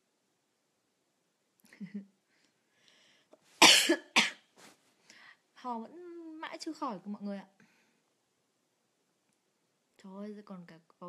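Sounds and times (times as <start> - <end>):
woman coughing: 3.6 - 4.4.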